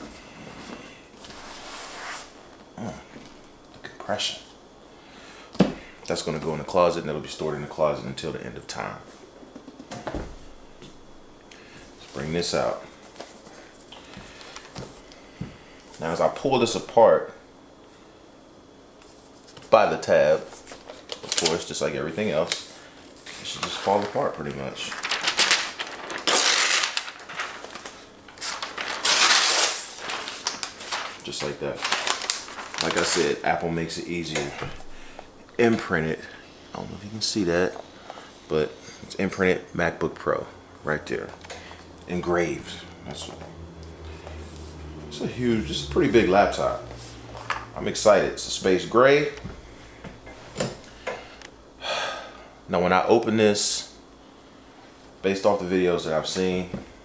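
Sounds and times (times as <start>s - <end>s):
paper wrap rustling: 19.1s - 36.0s.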